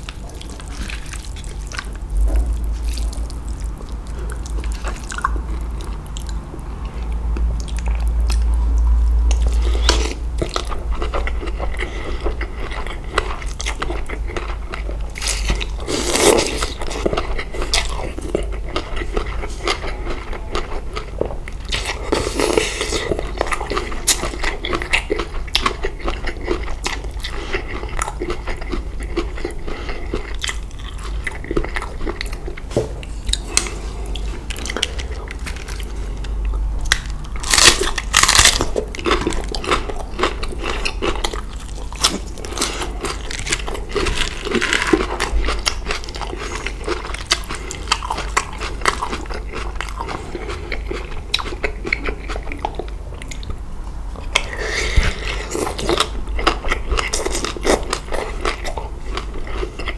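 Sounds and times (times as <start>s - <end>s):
low hum: 0.0s - 18.7s
chewing and crunching food: 0.0s - 59.9s.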